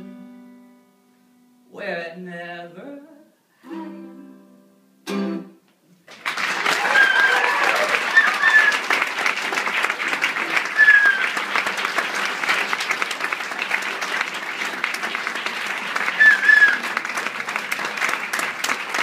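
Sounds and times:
audience applauding: 6.1 - 19.0
high calls from crowd: 6.6 - 9.1, 10.1 - 11.8, 15.3 - 19.0.

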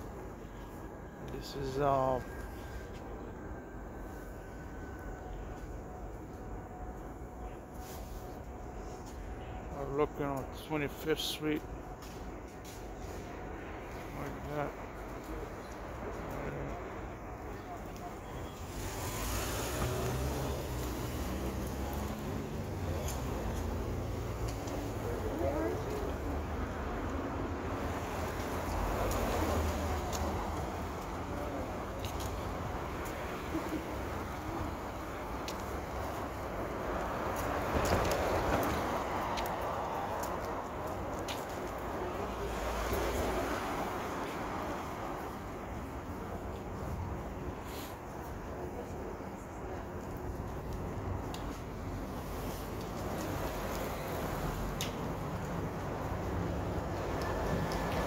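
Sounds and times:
low traffic rumble: 0.0 - 58.0.

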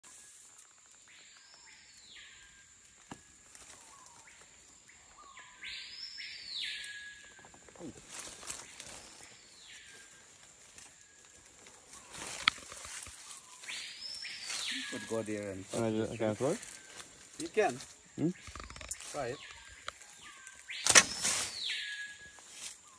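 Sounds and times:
insects rasping buzz: 0.0 - 22.9
bow trap snapping: 20.7 - 21.7
sharp click: 20.8 - 21.4.

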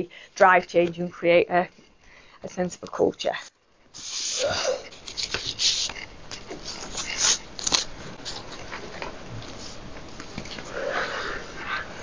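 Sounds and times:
pens scratching on paper: 2.5 - 8.7
paper rustling: 4.9 - 10.6.

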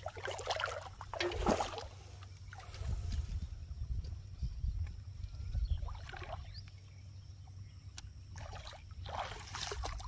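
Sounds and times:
shallow water splashing: 0.0 - 3.0, 5.8 - 6.7, 8.3 - 10.0.

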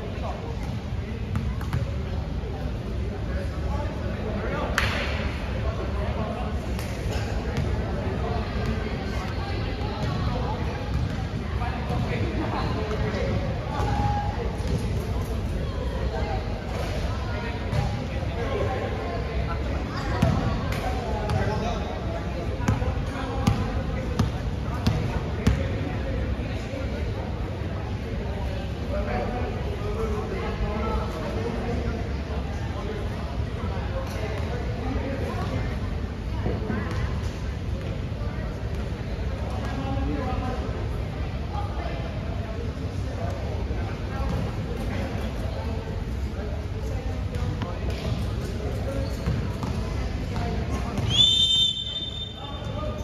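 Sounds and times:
murmur of voices: 0.0 - 53.0
players chatting: 0.0 - 53.0
basketball bouncing in a gym: 0.6 - 2.1, 9.8 - 14.9, 17.7 - 18.0, 20.0 - 21.7, 22.6 - 25.9, 36.9 - 37.1, 49.0 - 51.1
basketball bouncing on court: 1.3 - 1.9, 10.0 - 10.2, 10.9 - 11.3, 11.9 - 12.1, 20.2 - 20.5, 23.4 - 25.7, 49.2 - 49.8.

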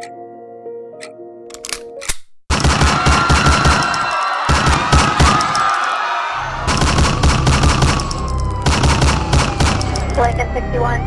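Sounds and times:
gunfire sound effects: 2.5 - 5.8, 6.6 - 10.2
dramatic music: 6.4 - 11.0.

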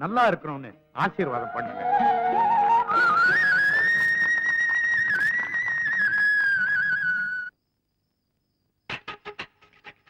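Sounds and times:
film music with flute melody: 1.2 - 7.5.

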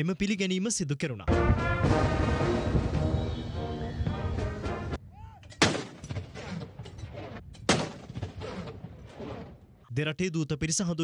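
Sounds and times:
field gun boom: 5.6 - 6.6, 7.7 - 8.9.

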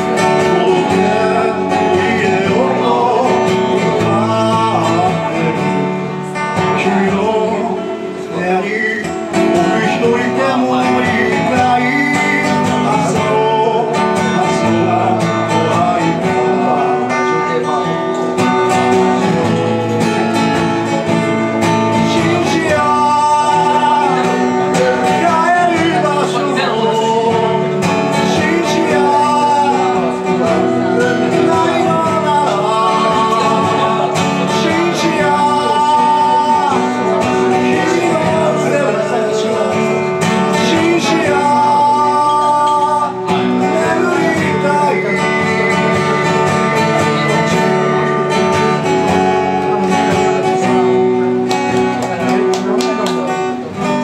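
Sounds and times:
man singing: 0.0 - 54.0
strummed acoustic guitar: 0.0 - 54.0.

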